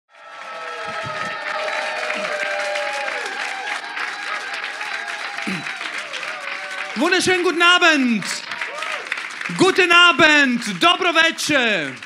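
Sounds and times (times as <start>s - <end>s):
audience applauding: 0.1s - 12.0s.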